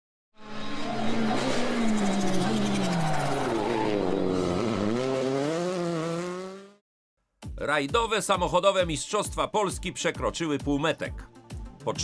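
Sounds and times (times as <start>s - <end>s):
rally car engine revving: 0.4s - 6.8s.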